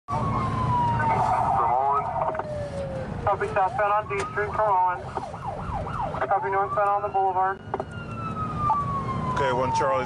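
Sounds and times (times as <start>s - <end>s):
siren falling in pitch: 0.1s - 3.4s, 4.0s - 10.0s.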